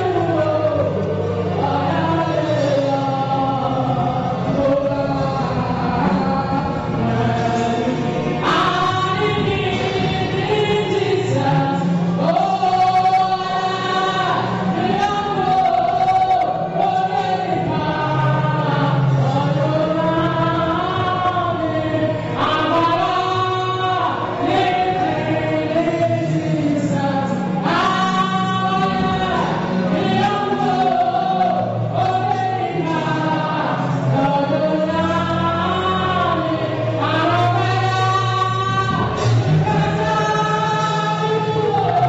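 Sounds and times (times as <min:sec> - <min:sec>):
voices singing along: 0:00.0 - 0:42.0
woman singing into a microphone: 0:00.0 - 0:42.0.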